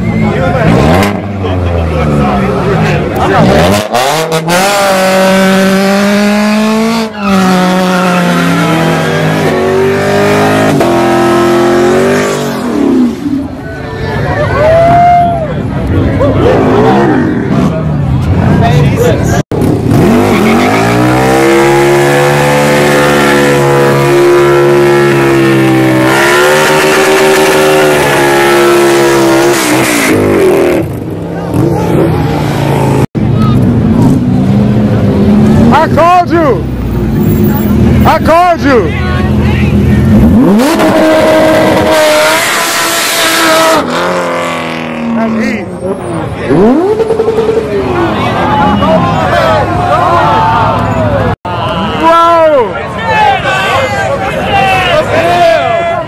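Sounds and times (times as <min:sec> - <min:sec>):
car engines revving: 0:00.0 - 0:56.0
motorcycle at high revs: 0:19.5 - 0:33.1.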